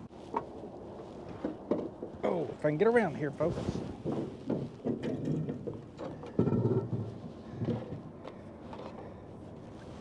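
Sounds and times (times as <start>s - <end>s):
low thumps and rumbling in boat: 3.4s - 8.8s.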